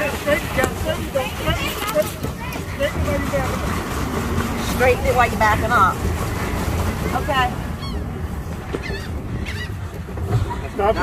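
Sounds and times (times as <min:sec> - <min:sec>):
voices: 0:00.0 - 0:09.8
paddle wheel churning water: 0:00.0 - 0:11.0.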